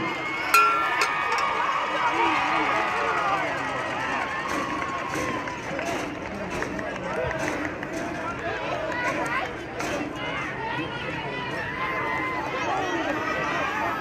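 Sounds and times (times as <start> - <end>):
stadium crowd chattering: 0.0 - 14.0.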